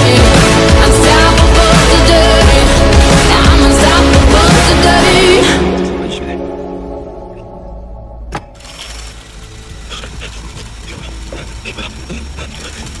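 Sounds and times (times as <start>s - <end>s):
low rumbling drone: 0.0s - 13.0s.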